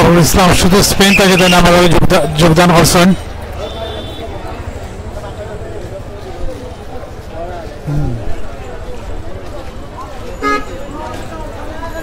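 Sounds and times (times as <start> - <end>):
crowd voices: 0.0 - 12.0
vehicle horn toot: 3.6 - 4.3, 10.4 - 10.8.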